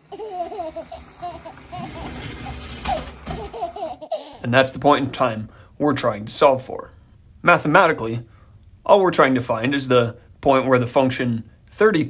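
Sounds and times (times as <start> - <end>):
person laughing: 0.0 - 2.2, 3.3 - 4.4
toy train motor whirring and rattling: 0.0 - 4.2.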